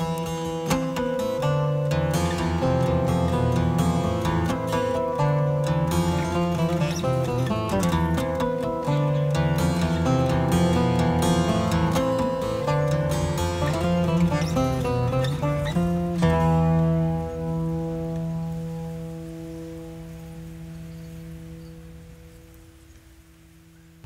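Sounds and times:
plucked lute melody with drone: 0.0s - 22.8s.

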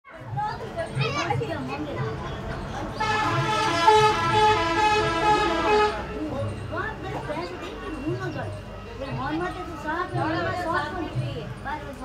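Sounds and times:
people's voices: 0.1s - 12.0s.

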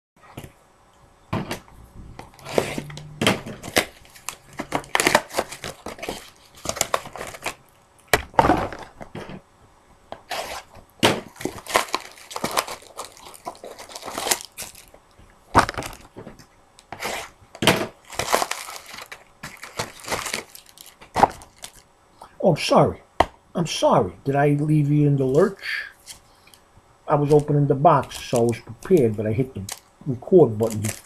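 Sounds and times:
cardboard and wrapping tearing: 2.3s - 7.8s, 10.3s - 14.9s, 15.6s - 16.1s, 16.9s - 21.8s, 30.6s - 31.0s.

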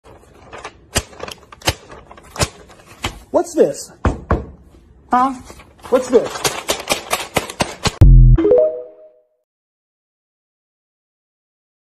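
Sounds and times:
paper crinkling and snapping: 0.0s - 3.2s, 5.5s - 8.0s.

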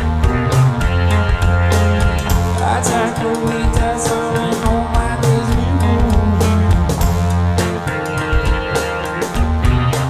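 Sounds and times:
bass guitar: 0.0s - 10.0s
electric guitar: 0.0s - 10.0s
keyboards: 0.0s - 10.0s
steady drum beat: 0.0s - 10.0s.

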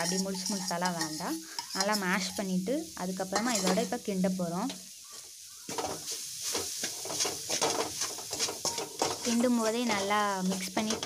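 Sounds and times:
metal spatula scraping a pan: 0.0s - 2.4s, 3.3s - 4.1s, 4.7s - 11.0s
food sizzling: 0.0s - 11.0s.

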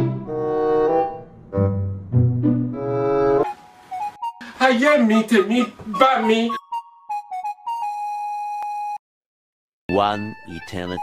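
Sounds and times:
person speaking: 4.4s - 6.6s, 9.9s - 11.0s.

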